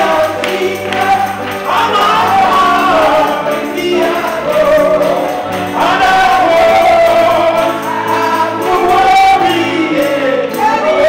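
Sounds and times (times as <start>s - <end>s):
choir singing gospel: 0.0s - 11.0s
instrumental backing: 0.0s - 11.0s
man singing into microphone: 0.0s - 11.0s.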